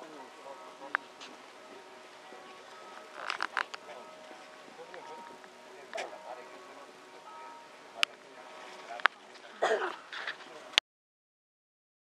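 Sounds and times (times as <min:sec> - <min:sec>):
distant voices: 0:00.0 - 0:10.8
faint steady tones: 0:00.0 - 0:10.8.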